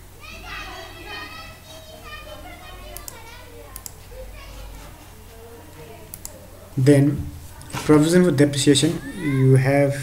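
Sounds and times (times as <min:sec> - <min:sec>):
children chattering and calling: 0:00.0 - 0:06.8, 0:07.4 - 0:10.0.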